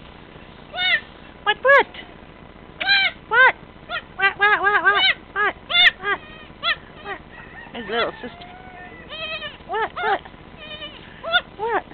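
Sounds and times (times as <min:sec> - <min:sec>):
goat kid bleating: 0:07.9 - 0:11.4.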